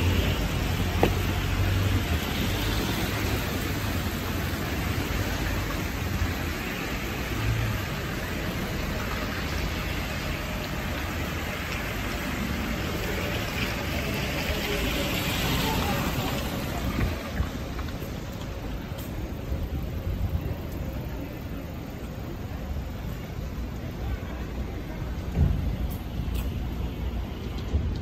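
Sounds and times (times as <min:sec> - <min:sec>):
tyres hissing on wet road: 0:00.0 - 0:28.0.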